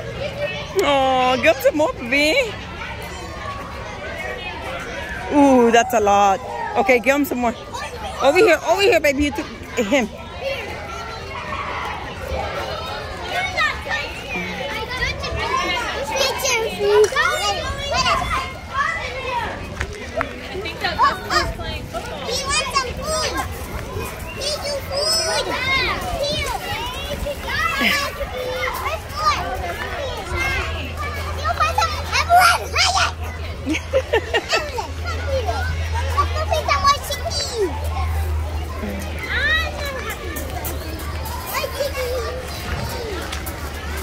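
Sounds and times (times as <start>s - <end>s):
children's voices and chatter: 0.0s - 44.0s.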